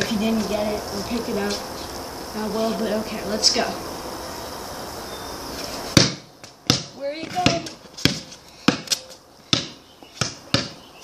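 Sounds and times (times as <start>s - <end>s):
basketball bouncing on concrete: 5.9s - 10.8s.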